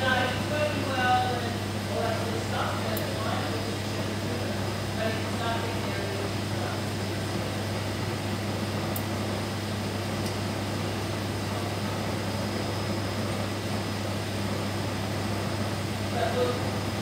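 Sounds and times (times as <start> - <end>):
pump and fans whirring: 0.0 - 17.0.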